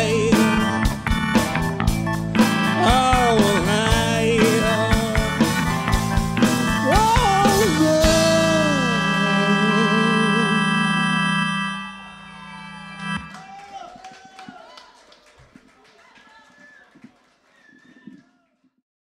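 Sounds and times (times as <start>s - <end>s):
rock band final chord: 0.0s - 13.3s.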